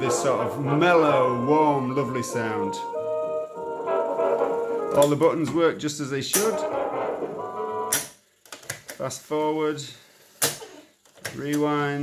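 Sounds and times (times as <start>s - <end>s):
music from tape recorder: 0.0s - 5.1s, 6.4s - 8.0s.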